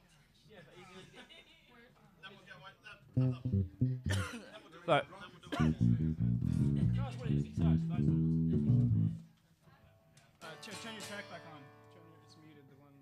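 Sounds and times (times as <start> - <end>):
electric bass guitar notes: 3.2 - 4.2, 5.6 - 9.2.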